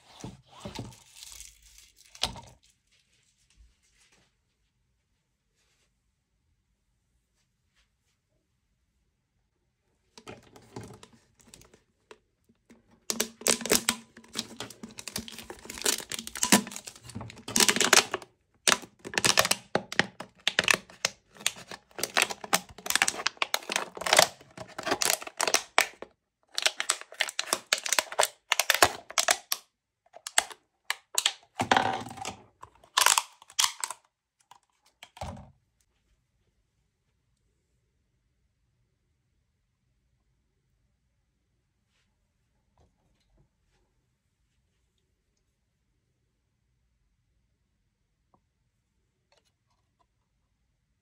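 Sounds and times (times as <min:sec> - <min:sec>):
plastic bottle crinkling: 0:10.2 - 0:35.2.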